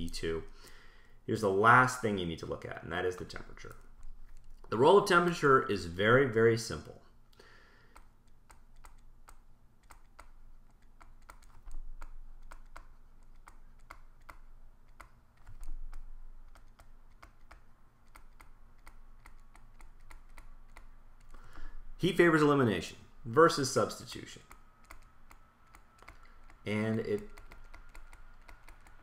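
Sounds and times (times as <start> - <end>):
low steady hum: 0.0 - 29.0
stylus tapping on drawing tablet: 7.9 - 21.0, 24.5 - 29.0.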